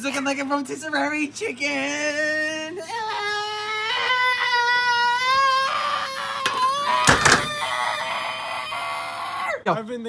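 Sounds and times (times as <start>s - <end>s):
young man laughing squeal: 3.1s - 9.6s.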